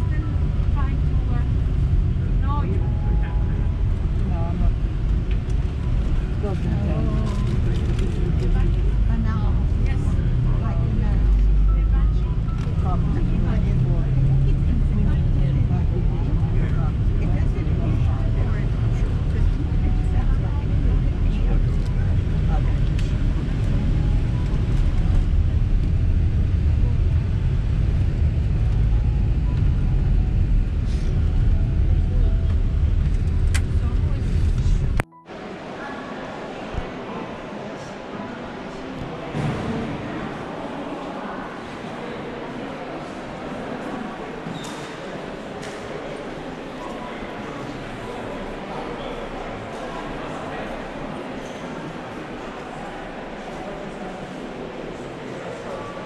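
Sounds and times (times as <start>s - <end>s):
bus engine and tyres rumbling: 0.0s - 56.0s
passengers talking quietly: 0.0s - 56.0s.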